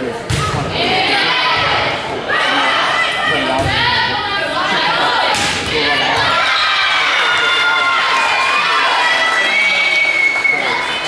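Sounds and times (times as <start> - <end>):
crowd shouting and cheering: 0.0 - 11.0
volleyball being struck: 0.3 - 0.8, 5.3 - 6.4.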